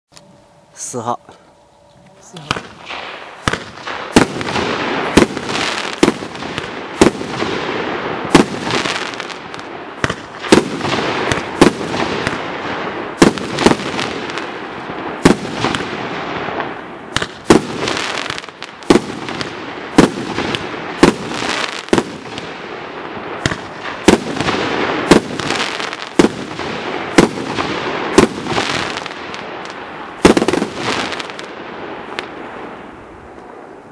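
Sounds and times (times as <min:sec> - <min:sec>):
firework bangs: 0:02.4 - 0:32.9
hiss of burning fireworks: 0:02.4 - 0:33.9.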